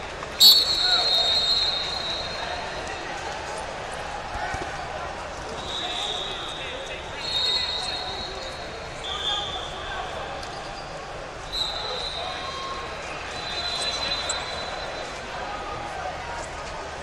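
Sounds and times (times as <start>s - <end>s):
crowd chatter in a large hall: 0.0s - 17.0s
referee whistle blasts: 0.4s - 2.7s, 5.6s - 9.9s, 11.5s - 15.2s.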